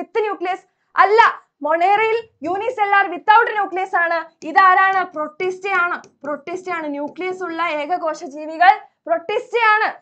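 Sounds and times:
woman sing-song speech: 0.0s - 10.0s.

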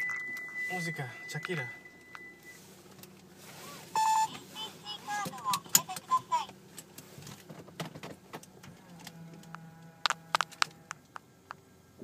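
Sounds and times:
loud steady beep: 0.0s - 2.7s, 4.0s - 4.4s.

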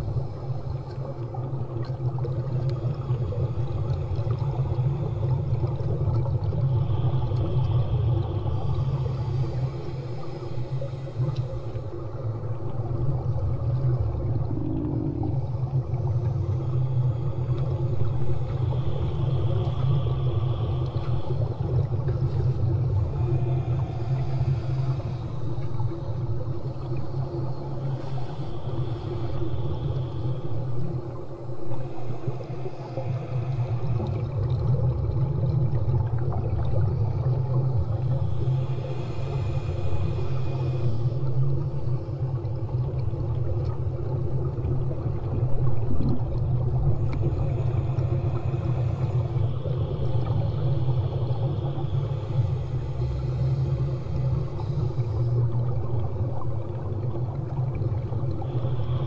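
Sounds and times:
low underwater rumble: 0.0s - 59.0s.

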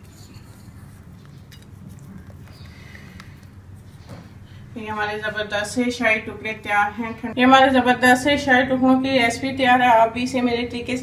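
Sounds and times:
low steady background hum: 0.0s - 11.0s
woman speaking: 4.8s - 11.0s.

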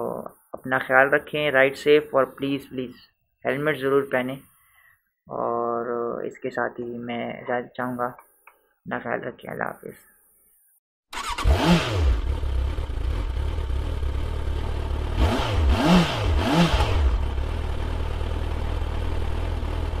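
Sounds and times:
motorcycle engine revving: 11.2s - 20.0s.

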